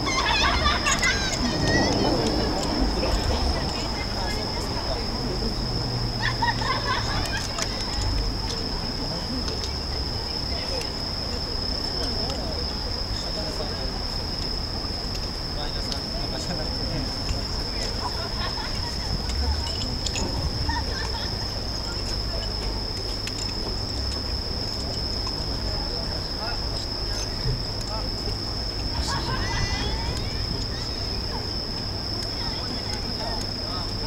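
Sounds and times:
crickets trilling: 0.0s - 34.0s
faint murmuring voices: 0.0s - 34.0s
low city rumble: 0.0s - 34.0s.

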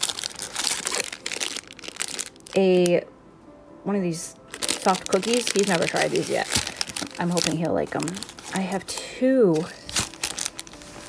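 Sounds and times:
plastic wrappers crinkling: 0.0s - 3.0s, 4.3s - 11.0s.

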